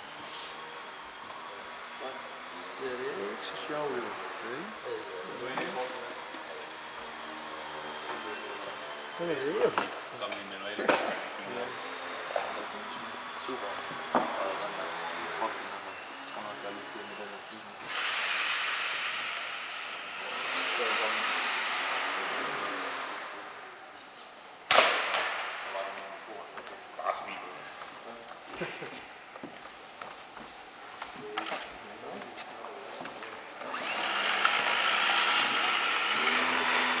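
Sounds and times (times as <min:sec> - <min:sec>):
model airplane motor whirring: 0:33.6 - 0:37.0.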